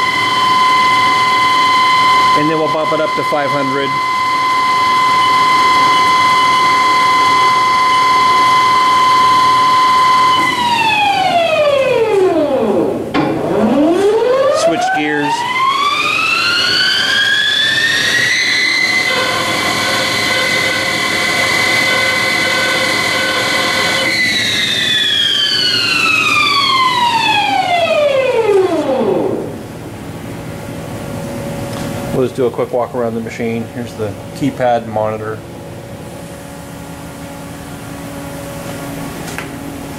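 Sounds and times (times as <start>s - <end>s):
lathe spindle whining: 0.0s - 29.6s.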